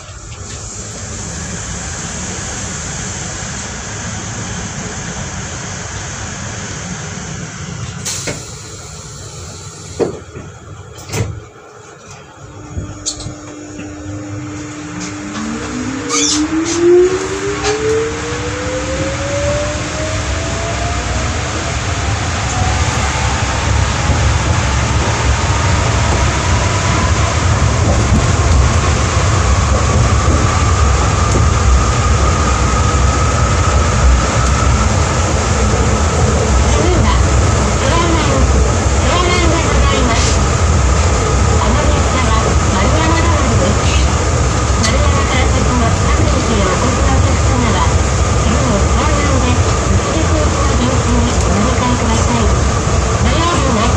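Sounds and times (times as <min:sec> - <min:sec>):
train running rumble: 0:00.0 - 0:53.9
traction motor whine rising: 0:12.3 - 0:39.1.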